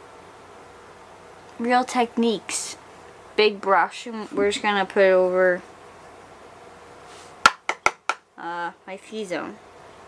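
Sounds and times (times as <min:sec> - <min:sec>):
room hiss: 0:00.0 - 0:10.0.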